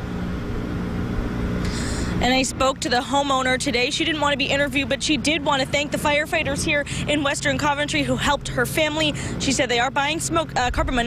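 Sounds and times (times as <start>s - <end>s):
engine idling rumble: 0.0s - 11.0s.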